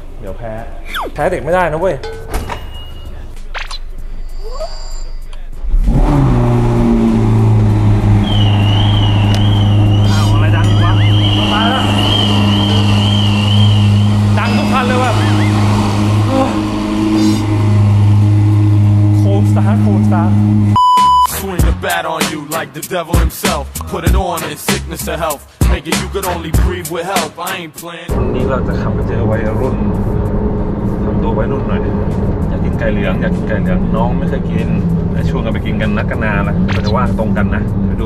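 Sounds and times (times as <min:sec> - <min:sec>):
warbling high electronic beep: 0:00.8 - 0:01.2, 0:02.0 - 0:05.5, 0:09.6 - 0:13.4, 0:14.4 - 0:15.6
car engine starting and idling: 0:05.3 - 0:21.3.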